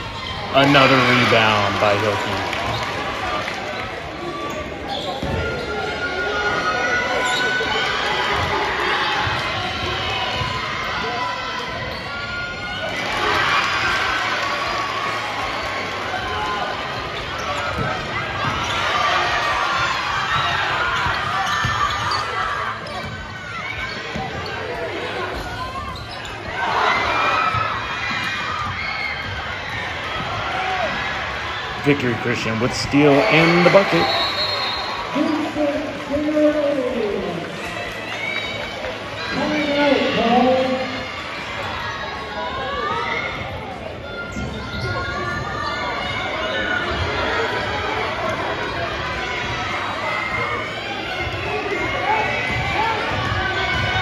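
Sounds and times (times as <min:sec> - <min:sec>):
crowd voices and shouts: 0:00.0 - 0:54.0.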